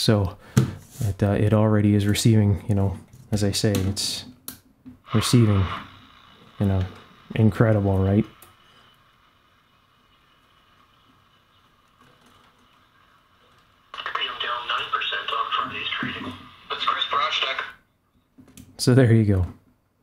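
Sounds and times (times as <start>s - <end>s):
tinny radio broadcast voice: 5.1s - 5.9s, 14.0s - 17.8s.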